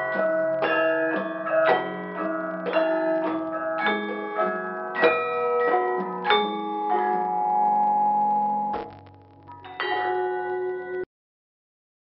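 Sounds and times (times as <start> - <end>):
gamelan ensemble playing: 0.0 - 8.8
metal keys struck by mallet: 0.0 - 11.0.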